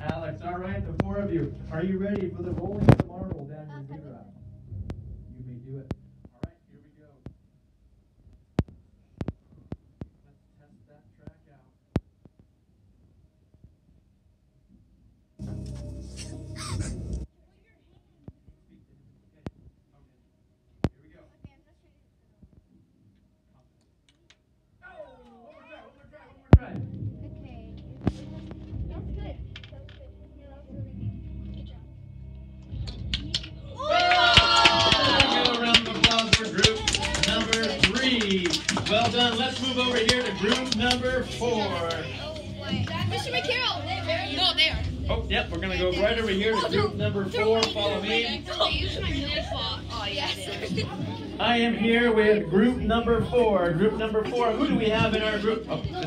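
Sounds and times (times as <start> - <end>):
clapping: 32.8 - 41.2
children shouting and cheering: 33.6 - 38.2.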